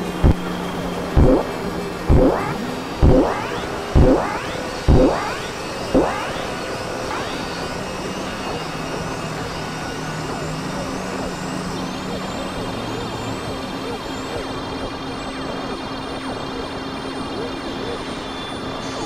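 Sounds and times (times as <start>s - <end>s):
synth pitch swoops: 0.0s - 0.6s, 1.2s - 7.6s
low synth drone: 0.0s - 18.2s
synthesizer noise wash: 0.0s - 18.2s
high arching chirp: 1.2s - 7.5s.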